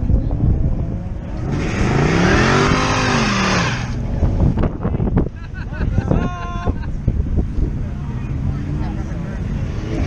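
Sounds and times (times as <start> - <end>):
car engine passing: 0.0 - 4.8, 7.2 - 10.0.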